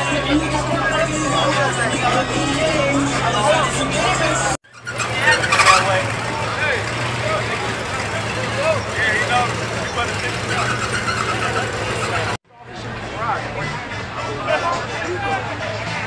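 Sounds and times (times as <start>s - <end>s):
car engine hum: 0.0s - 12.4s
people talking: 0.0s - 16.0s.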